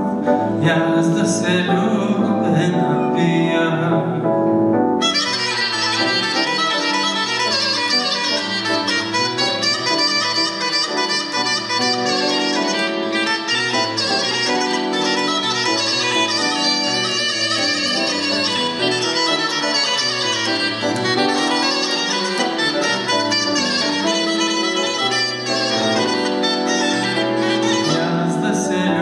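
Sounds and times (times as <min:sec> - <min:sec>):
bagpipe folk melody: 0:05.0 - 0:28.4.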